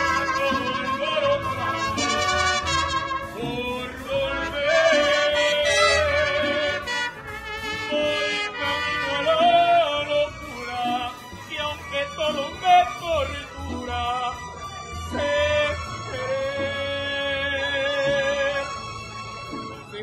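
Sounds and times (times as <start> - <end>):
man singing mariachi music: 0.0 - 20.0.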